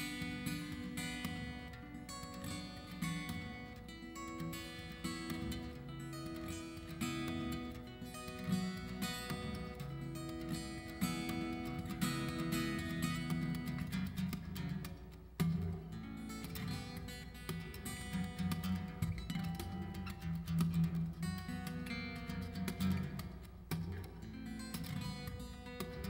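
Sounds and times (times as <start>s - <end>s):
fingerstyle acoustic guitar: 0.0s - 26.0s.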